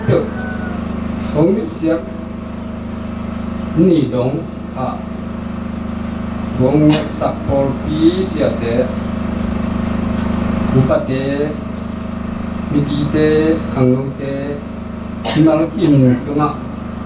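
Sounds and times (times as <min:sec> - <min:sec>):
steady low hum: 0:00.0 - 0:17.0
man speaking into a microphone: 0:01.3 - 0:02.2, 0:06.5 - 0:09.0, 0:10.7 - 0:11.7, 0:12.6 - 0:16.8.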